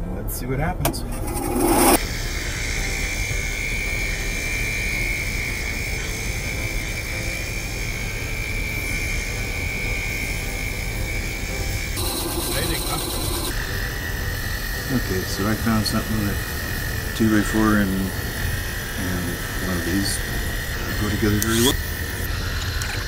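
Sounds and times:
bandsaw cutting wood: 0:01.1 - 0:23.0.

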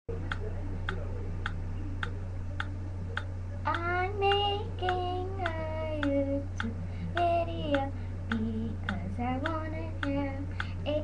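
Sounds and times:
low hum: 0:00.1 - 0:11.0
steady ticking: 0:00.3 - 0:11.0
girl singing unaccompanied: 0:03.7 - 0:11.0.

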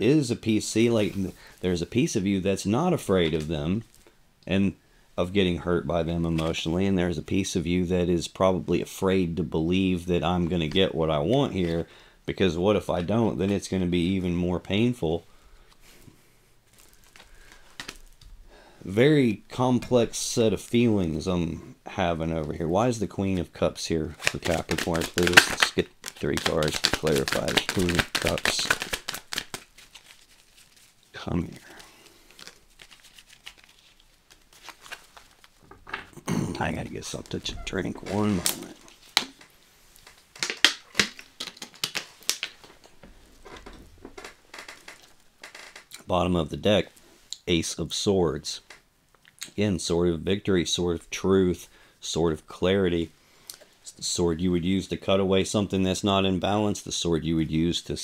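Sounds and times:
plastic bottle crinkling: 0:16.6 - 0:18.3, 0:24.1 - 0:35.9, 0:36.6 - 0:45.8
cards tapping and rustling: 0:16.7 - 0:18.2, 0:24.1 - 0:30.4, 0:31.6 - 0:36.1, 0:37.0 - 0:45.1.

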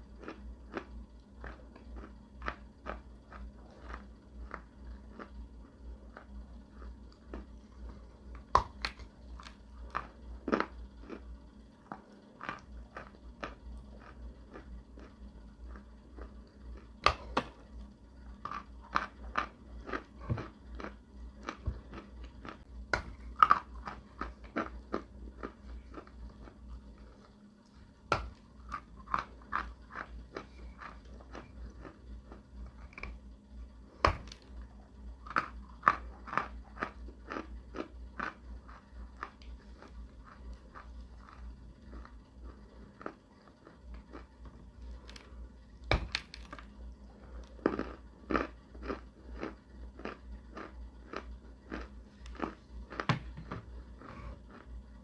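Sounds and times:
crunching clay being chewed: 0:00.0 - 0:17.7, 0:18.4 - 0:33.2, 0:35.2 - 0:45.4, 0:46.0 - 0:55.0.

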